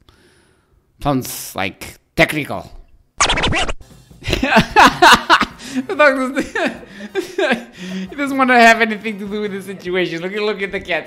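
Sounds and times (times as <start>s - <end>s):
record scratch effect: 3.2s - 3.8s.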